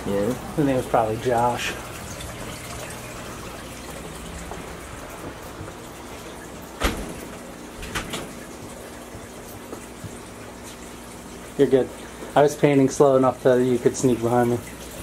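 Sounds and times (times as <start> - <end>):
aquarium filter water bubbling: 0.0 - 15.0.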